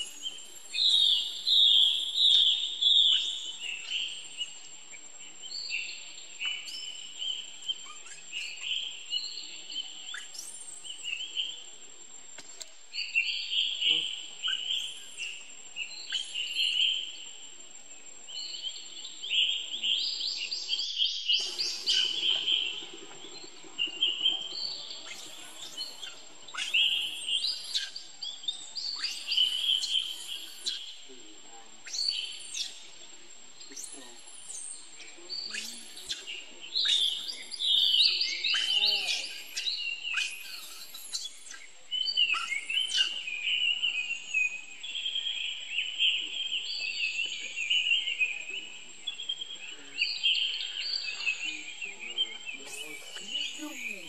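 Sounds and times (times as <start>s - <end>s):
birds chirping: 0.0s - 54.0s
high-pitched insect drone: 21.4s - 33.0s, 33.6s - 41.7s.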